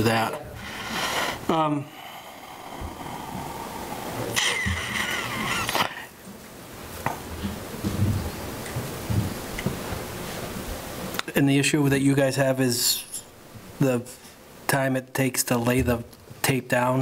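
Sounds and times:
steady room hiss: 0.0s - 17.0s.

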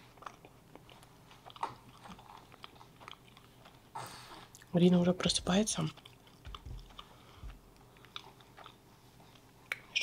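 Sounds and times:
person chewing pastry: 0.0s - 10.0s
soft mouth clicks: 9.7s - 10.0s.

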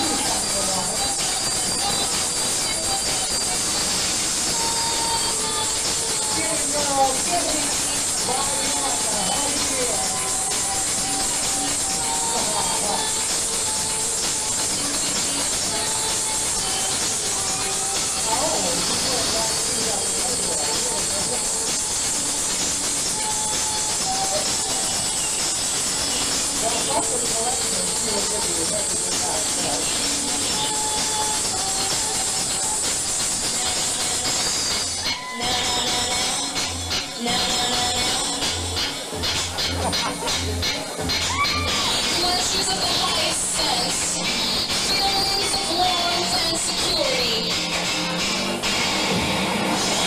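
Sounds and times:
club crowd noise: 0.0s - 50.0s
playback music: 0.0s - 50.0s
steady heavy hiss: 0.0s - 50.0s
voices: 0.0s - 50.0s.

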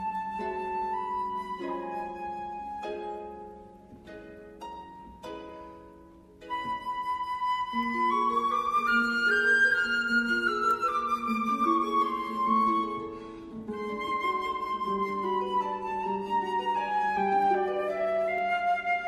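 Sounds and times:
flute melody: 0.0s - 4.0s, 6.3s - 19.0s
harp notes: 0.0s - 19.0s.

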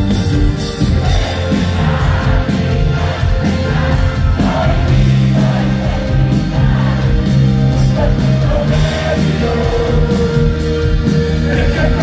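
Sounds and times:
drum kit with cymbal hits: 0.0s - 12.0s
electric bass: 0.0s - 12.0s
electric guitar: 0.0s - 12.0s.

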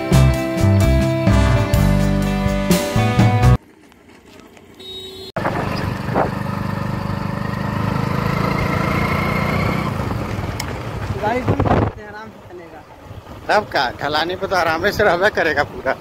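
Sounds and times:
vehicle engine humming: 2.6s - 16.0s
wind rushing over microphone: 11.4s - 12.0s.

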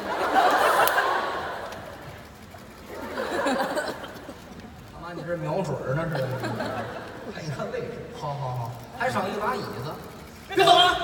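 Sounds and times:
audience laughter: 0.0s - 1.9s, 2.8s - 4.5s, 6.0s - 7.5s.

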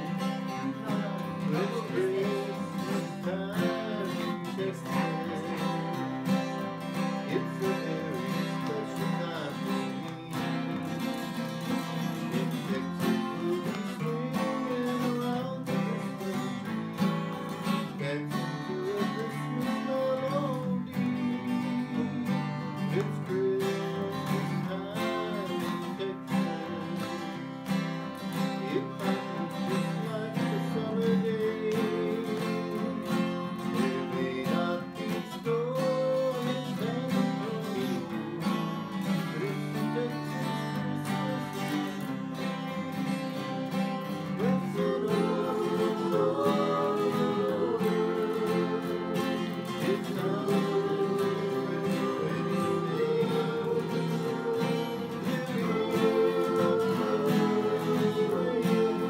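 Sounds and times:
people singing along: 0.0s - 27.6s, 28.2s - 42.4s, 43.0s - 59.0s
acoustic guitars strumming: 0.0s - 59.0s.

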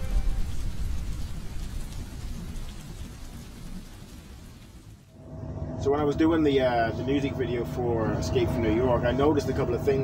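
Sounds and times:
rain-like hiss: 0.0s - 5.2s.

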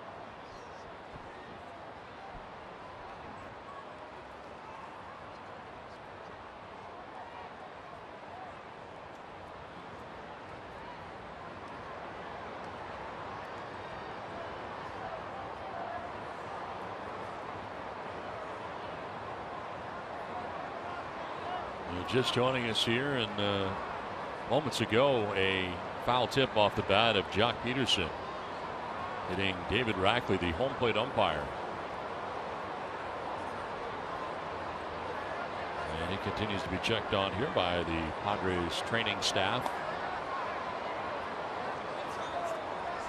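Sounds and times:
crowd chatter: 9.8s - 43.0s.

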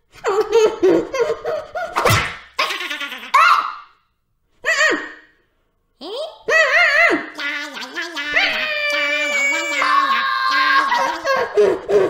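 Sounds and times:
cartoon cat high-pitched vocal sounds: 6.0s - 11.2s.

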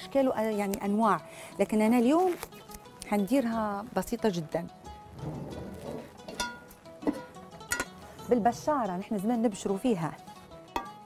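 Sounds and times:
plucked string music: 2.1s - 11.0s.

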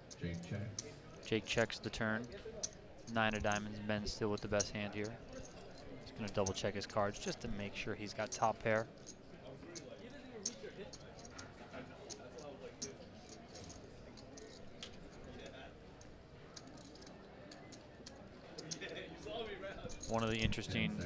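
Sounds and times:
faint murmuring voices: 0.0s - 21.0s
poker chips clicking: 12.8s - 18.9s, 19.8s - 20.9s.

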